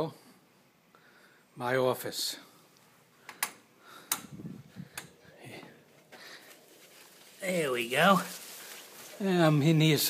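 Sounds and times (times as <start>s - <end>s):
sharp clicks and taps: 3.3s - 4.3s
leaves rustling: 4.4s - 10.0s.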